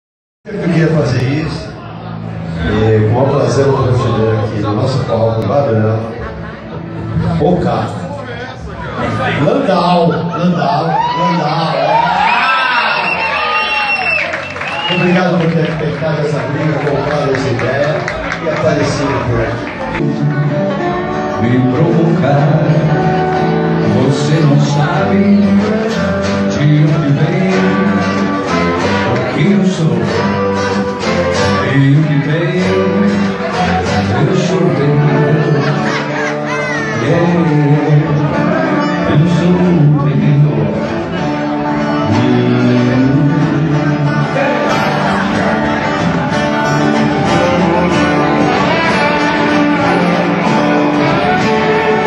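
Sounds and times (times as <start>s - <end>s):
acoustic guitar strumming: 15.0s - 52.0s
lap steel guitar notes: 19.8s - 52.0s.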